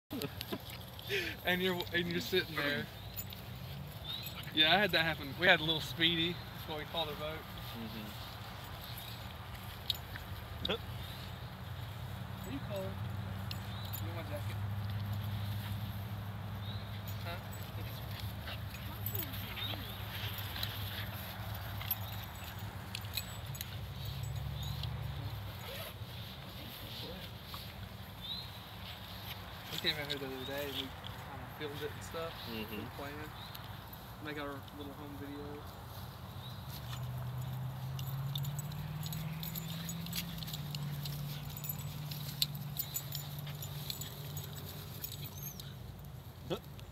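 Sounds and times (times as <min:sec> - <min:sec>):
dogs scuffling on grass: 0:00.2 - 0:46.9.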